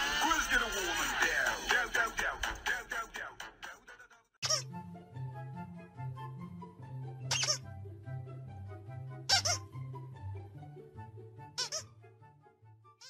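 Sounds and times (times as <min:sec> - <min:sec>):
background music with bass line: 0:00.0 - 0:03.8
squeaky dog toy squeaking: 0:04.4 - 0:04.7, 0:07.3 - 0:07.7, 0:09.3 - 0:09.8, 0:11.5 - 0:11.9.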